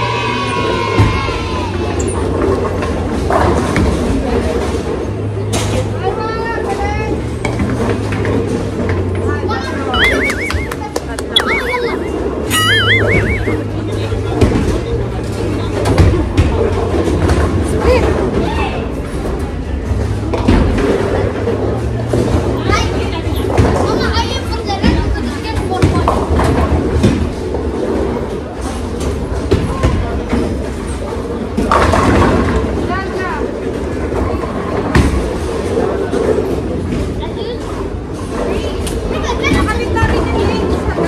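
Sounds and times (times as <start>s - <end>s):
voices: 9.6s - 14.3s
bowling balls rolling: 10.0s - 18.3s.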